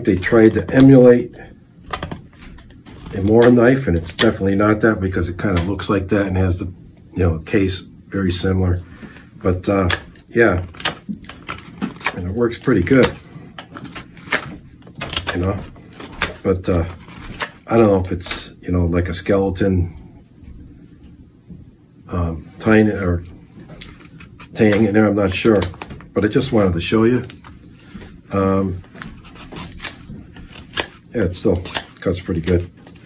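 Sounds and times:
knife scraping wood: 2.0s - 4.4s, 9.8s - 17.7s, 28.9s - 33.0s.

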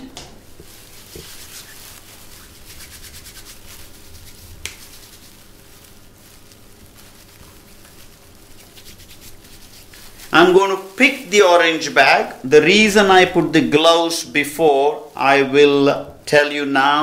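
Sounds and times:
hands rubbing with gel: 0.5s - 13.5s.

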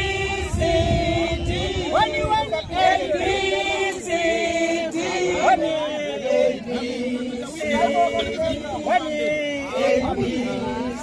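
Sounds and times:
women singing a chanted song: 0.0s - 11.0s.

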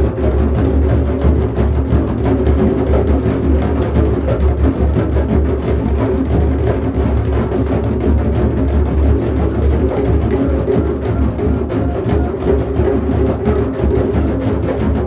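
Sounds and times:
drums playing: 0.0s - 15.0s.

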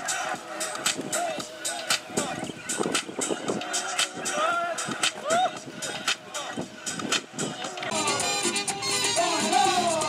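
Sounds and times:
pop song with singing: 0.0s - 10.0s.

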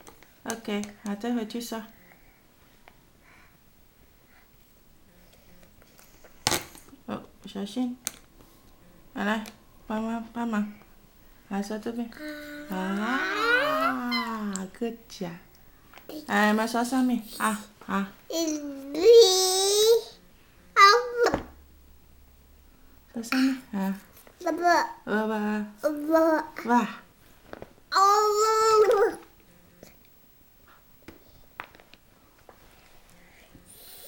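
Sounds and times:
toddler whining cry: 12.2s - 14.4s.

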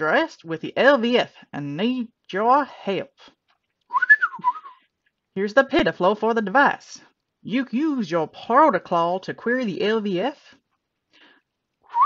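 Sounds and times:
rising and falling whistle: 3.9s - 4.7s.

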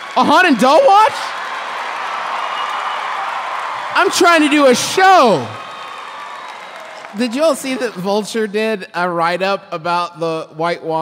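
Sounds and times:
audience applauding: 0.0s - 8.4s.

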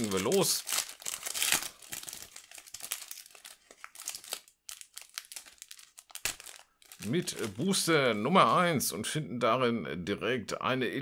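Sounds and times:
foil pack crinkling: 0.0s - 8.6s.

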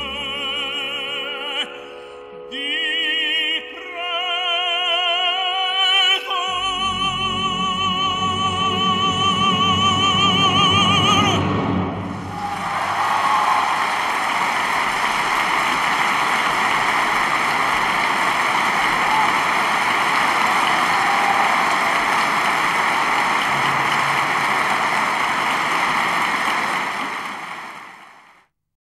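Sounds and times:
audience applauding: 12.2s - 28.5s
audience shouts: 12.3s - 26.8s.

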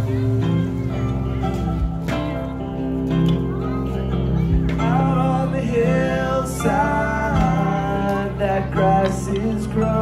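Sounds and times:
acoustic guitar: 0.0s - 10.0s
double bass: 0.0s - 10.0s
mandolin: 0.0s - 10.0s.

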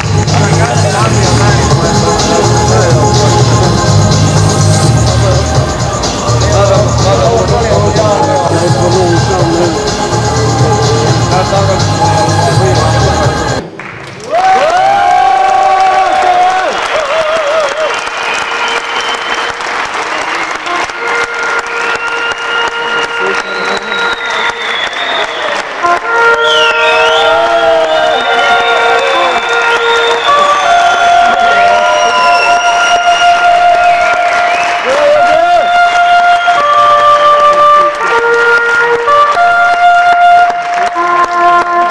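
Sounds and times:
gliding melodic notes: 0.0s - 13.6s
music with strong bass beat: 0.0s - 13.7s
crowd applauding and cheering: 0.0s - 41.9s.

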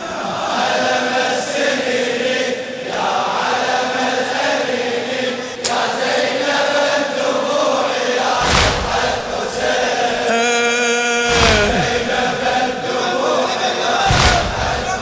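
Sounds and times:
crowd of men chanting: 0.0s - 15.0s
collective chest-beat: 8.4s - 12.7s
voice holding long note: 10.1s - 13.0s.

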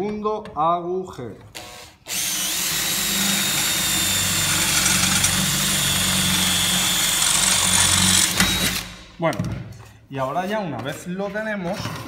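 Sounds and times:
cordless drill boring through metal: 1.6s - 9.0s.

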